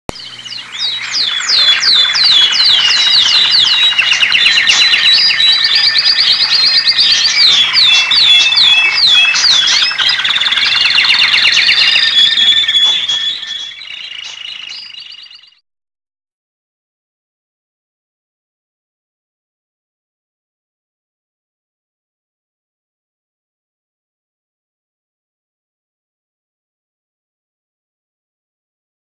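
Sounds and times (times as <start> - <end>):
bird-like chirps and whistles: 0.1 - 15.6.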